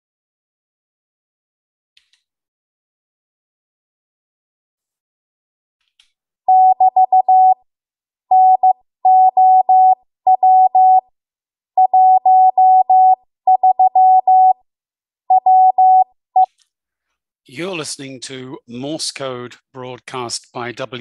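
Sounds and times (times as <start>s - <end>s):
morse code tone: 6.5s - 7.6s, 8.3s - 11.1s, 11.8s - 14.6s, 15.3s - 16.5s.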